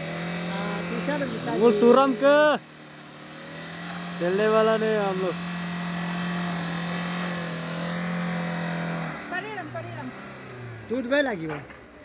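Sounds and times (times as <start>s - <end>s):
car engine revving in mud: 0.0s - 11.6s.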